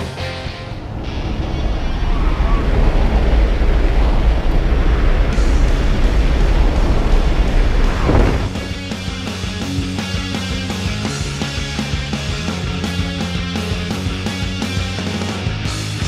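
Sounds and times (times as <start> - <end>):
rock music: 0.0 - 1.7, 7.5 - 16.0
plane engine and propeller: 0.0 - 14.9
wind buffeting microphone: 0.5 - 10.0.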